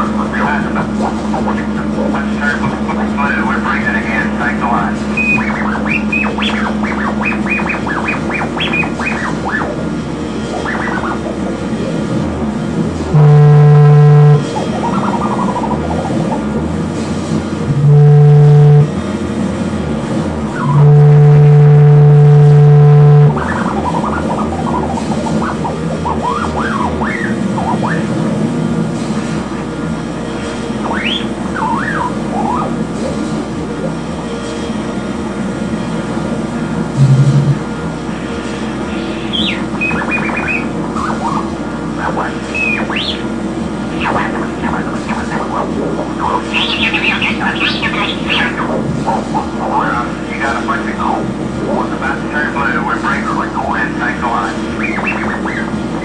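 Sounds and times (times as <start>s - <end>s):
loud steady low tone: 0.0s - 27.1s, 35.8s - 41.0s
dense noisy bed: 0.0s - 56.0s
high pitches sliding: 12.9s - 19.0s, 20.5s - 28.1s, 37.0s - 43.3s.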